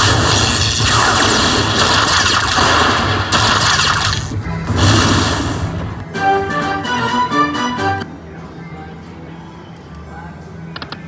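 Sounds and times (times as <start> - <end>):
electric crackle and thunder effects: 0.0 - 6.0
slot machine game music: 3.4 - 8.2.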